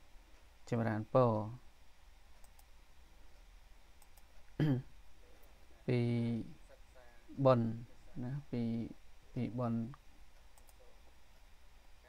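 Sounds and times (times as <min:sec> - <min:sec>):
man speaking: 0:00.7 - 0:01.6, 0:04.6 - 0:10.0
faint sharp clicks: 0:02.4 - 0:02.7, 0:04.0 - 0:04.5, 0:09.9 - 0:11.5.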